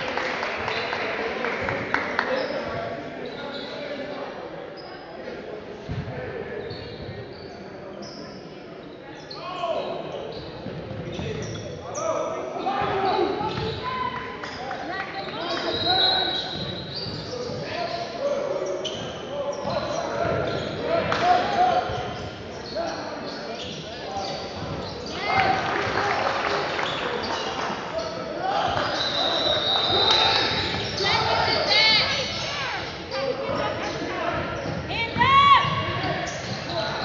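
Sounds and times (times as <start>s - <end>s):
indistinct shouting and voices: 11.4s - 37.0s.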